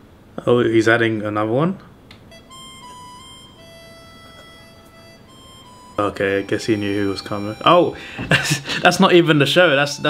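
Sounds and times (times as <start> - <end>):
slow harmonica tune: 2.2 - 10.0.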